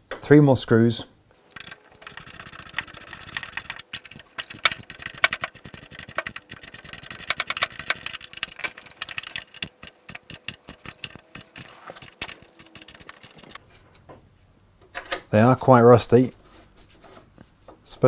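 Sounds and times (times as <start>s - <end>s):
ratchet wrench clicking: 1.5s - 13.6s.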